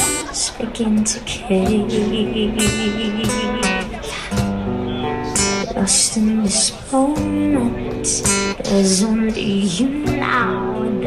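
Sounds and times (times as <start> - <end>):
acoustic guitar strumming chords: 0.0 - 11.0
cajon beating time: 0.0 - 11.0.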